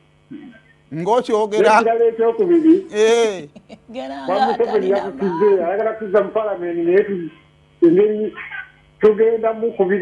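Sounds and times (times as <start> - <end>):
person voicing drawn-out eh: 2.9 - 5.6.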